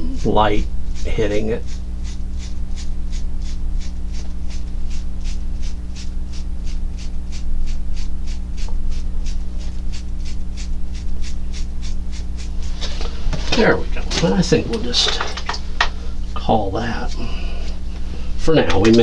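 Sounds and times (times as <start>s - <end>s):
sponge dabbing paint on canvas: 0.0s - 13.0s
steady low hum: 0.0s - 19.0s.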